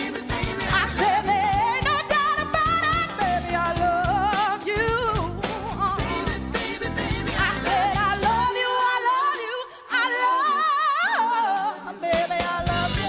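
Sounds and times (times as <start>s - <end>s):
band with steady beat: 0.0s - 9.4s, 11.6s - 13.0s
woman singing soul song: 0.2s - 13.0s.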